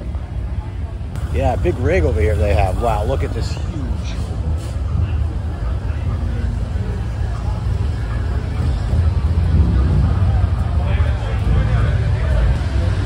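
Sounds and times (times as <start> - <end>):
people talking: 0.0 - 13.0
steady low rumble: 0.0 - 13.0.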